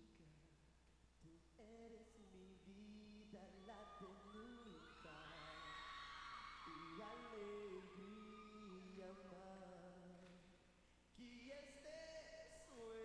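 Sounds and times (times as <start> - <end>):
male vocal group singing a cappella: 1.2 - 5.7, 6.6 - 10.5, 11.2 - 13.0
audience screaming: 3.5 - 9.5.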